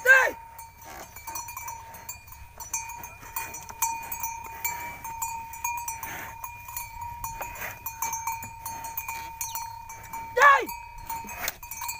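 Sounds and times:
high ringing: 0:00.0 - 0:11.9
light metal clinks: 0:00.0 - 0:11.9.

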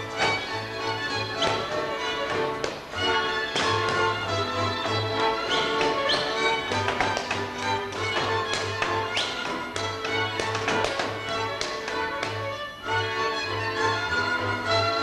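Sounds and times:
fiddle-led folk dance music: 0:00.0 - 0:15.0
boots stamping on wooden stage: 0:01.4 - 0:04.3, 0:05.1 - 0:12.3.

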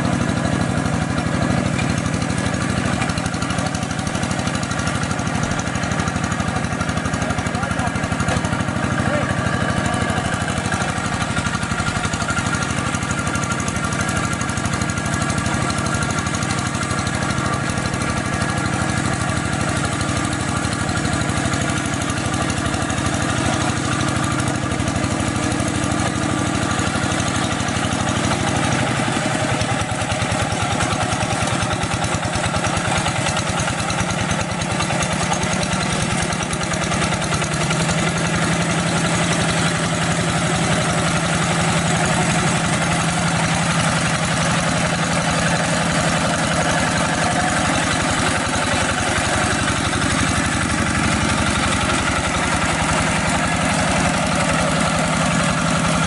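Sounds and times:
diesel engine running under load: 0:00.0 - 0:56.0.

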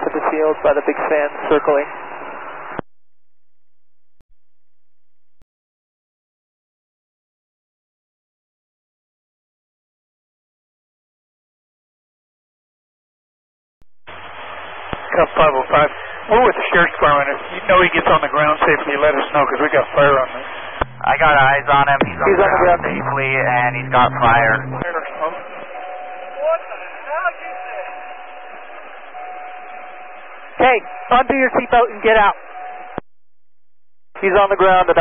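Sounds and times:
radio static with low hum: 0:00.0 - 0:02.8, 0:14.1 - 0:25.7, 0:30.6 - 0:32.6, 0:34.1 - 0:35.0
thin steady tone: 0:20.8 - 0:33.0.

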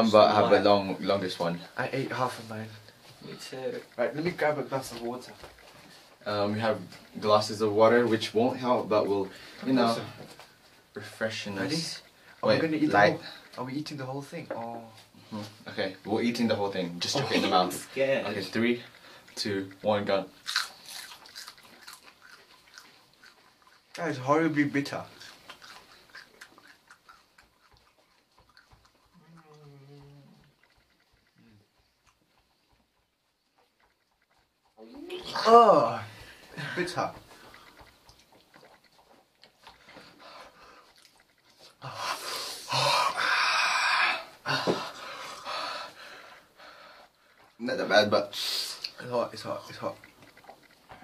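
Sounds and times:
chewing and mouth sounds: 0:00.0 - 0:51.0
heavy breaths through the mouth: 0:41.8 - 0:47.4.

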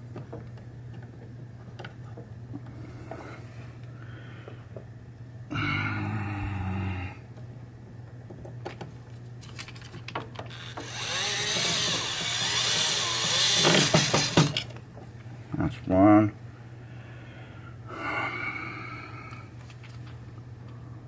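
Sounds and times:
drill clutch clicks: 0:10.4 - 0:14.7
cordless drill driving screws: 0:10.5 - 0:14.7.

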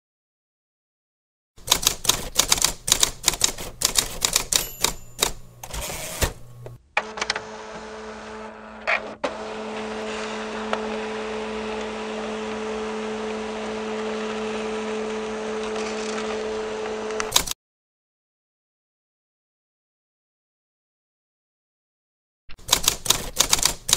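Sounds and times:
keyboard typing: 0:01.6 - 0:06.3, 0:17.2 - 0:17.6, 0:22.5 - 0:23.9.

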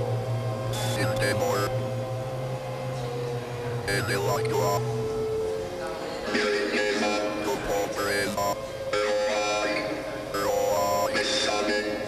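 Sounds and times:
low hum: 0:00.0 - 0:05.1
mid-pitched electronic tone: 0:00.7 - 0:01.8, 0:03.9 - 0:04.8, 0:07.5 - 0:08.6, 0:10.4 - 0:11.2.

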